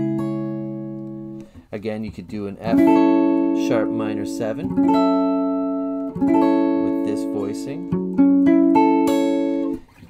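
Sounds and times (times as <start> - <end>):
electric guitar chord ringing: 2.7 - 9.8.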